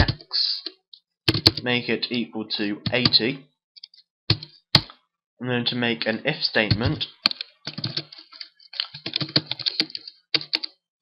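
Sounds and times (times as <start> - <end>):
computer keyboard typing: 1.3 - 1.6, 3.8 - 4.9, 6.7 - 10.8.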